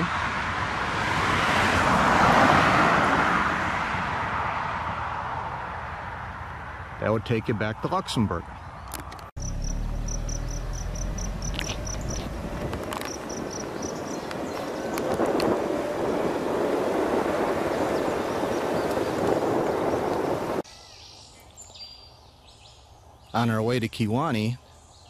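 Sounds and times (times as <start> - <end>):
low hum: 9.4 - 19.2
insect chirping: 9.4 - 20.9
wind buffeting microphone: 10.1 - 20.6.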